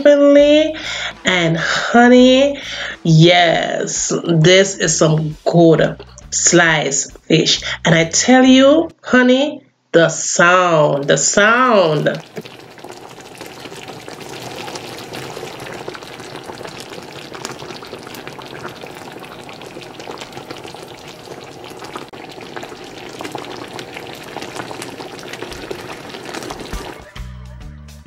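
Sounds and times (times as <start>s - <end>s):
sauce bubbling and sizzling in a pan: 11.0s - 27.1s.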